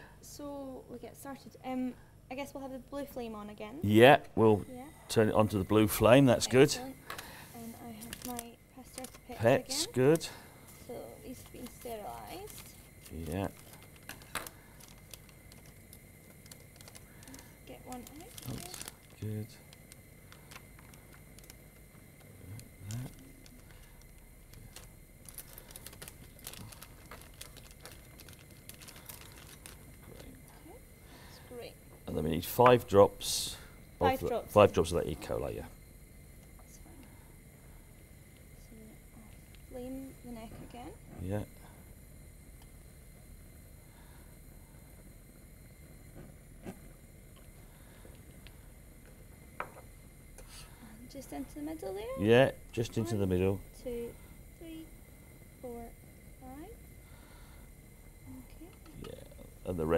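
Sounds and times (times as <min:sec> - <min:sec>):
packet crinkling and clicks: 0:08.0 - 0:09.2, 0:12.4 - 0:21.8, 0:22.5 - 0:30.3.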